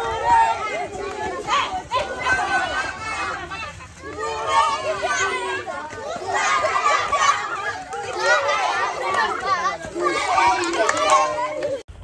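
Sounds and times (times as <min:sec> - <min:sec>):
crowd of children talking: 0:00.0 - 0:12.0.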